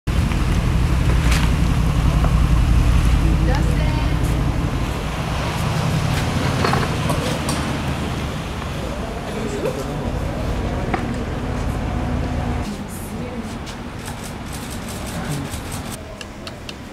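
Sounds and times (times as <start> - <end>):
car engine rumbling: 0.1 - 16.0
faint voices: 8.6 - 14.2.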